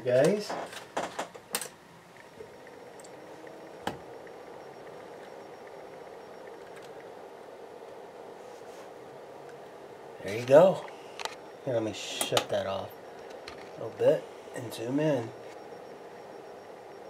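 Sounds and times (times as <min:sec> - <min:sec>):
faint hum: 0:00.0 - 0:17.0.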